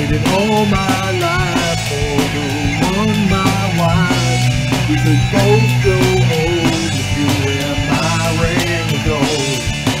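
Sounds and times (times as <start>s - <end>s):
lead guitar with bending notes: 0.0s - 10.0s
rock power ballad: 0.0s - 10.0s.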